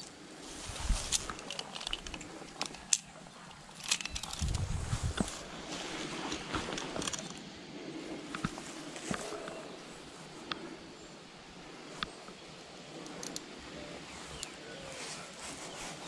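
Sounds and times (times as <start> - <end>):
rustling in grass: 0.0 - 10.4, 12.9 - 16.0
scattered clicks: 1.1 - 5.3
wind buffeting microphone: 4.0 - 10.0.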